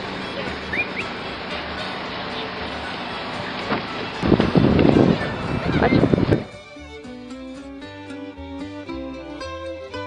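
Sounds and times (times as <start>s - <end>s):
wind buffeting microphone: 3.7s - 6.7s.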